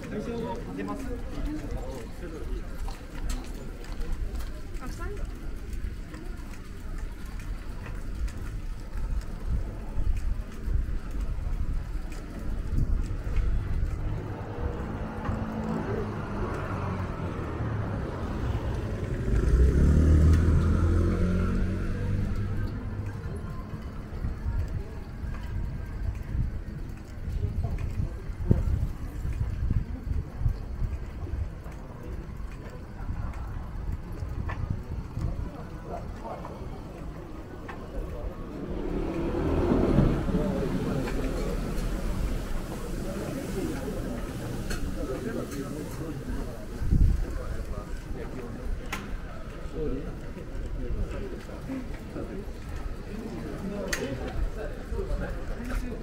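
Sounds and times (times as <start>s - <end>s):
passers-by talking: 0.0s - 56.0s
motor vehicle passing: 13.6s - 24.0s, 35.0s - 48.6s.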